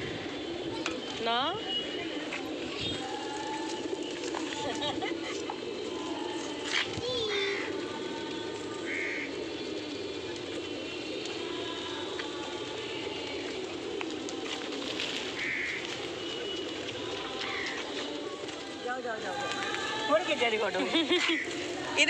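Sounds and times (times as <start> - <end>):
pigeons cooing: 0.0 - 22.0.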